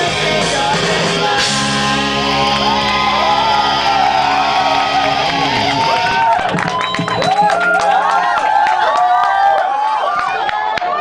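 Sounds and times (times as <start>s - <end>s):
rock band sustained chord: 0.0s - 6.5s
crowd cheering and whooping: 1.6s - 11.0s.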